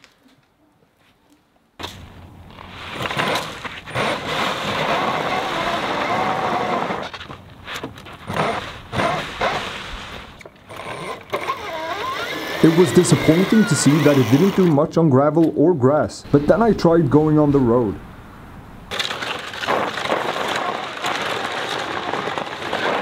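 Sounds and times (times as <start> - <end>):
tire spinning on gravel: 2.2 - 14.8, 18.9 - 23.0
electric motor whining: 10.7 - 14.8.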